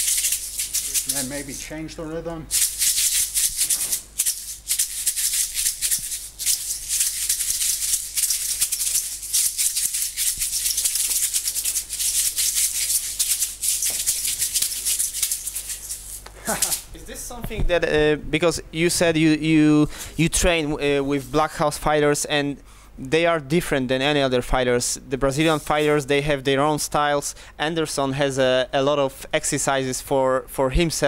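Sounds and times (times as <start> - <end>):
maracas rattling: 0.0 - 1.6, 2.5 - 17.0.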